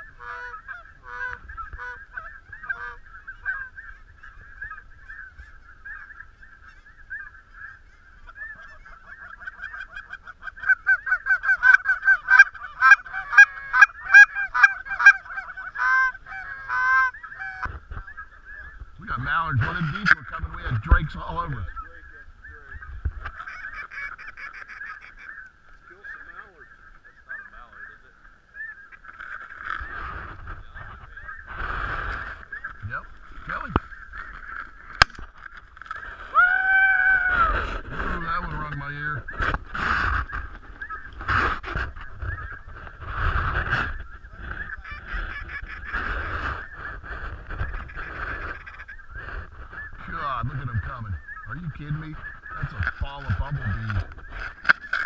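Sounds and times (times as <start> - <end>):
geese honking: 0.0 - 55.0
wind on microphone: 17.6 - 23.4, 29.7 - 35.4, 36.0 - 55.0.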